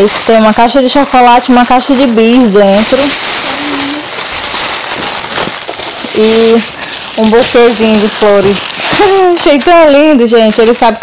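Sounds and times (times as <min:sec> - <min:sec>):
cellophane crinkling: 0:00.0 - 0:11.0.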